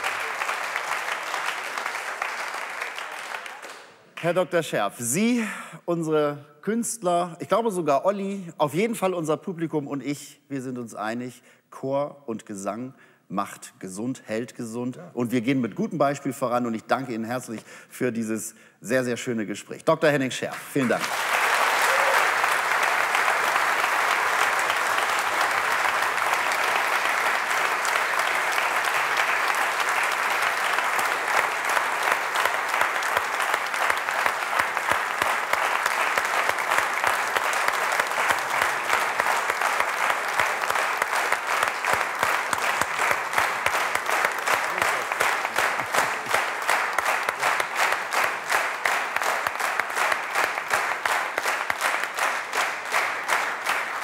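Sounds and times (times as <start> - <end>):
audience applauding: 0.0 - 4.4, 20.6 - 54.0.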